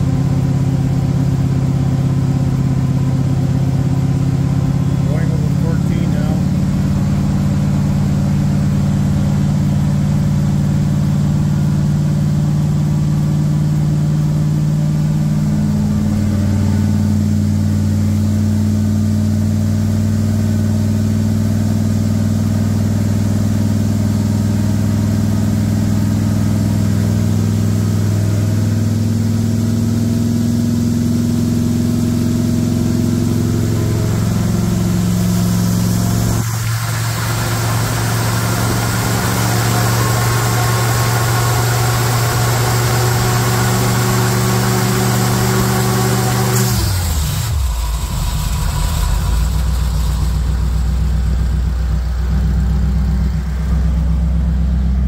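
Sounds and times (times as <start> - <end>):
engine running at raised idle: 0.0 - 55.0.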